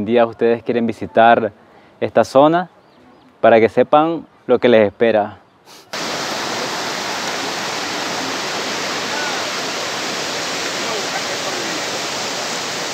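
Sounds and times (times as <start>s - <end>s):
water rushing over rocks: 6.0s - 12.9s.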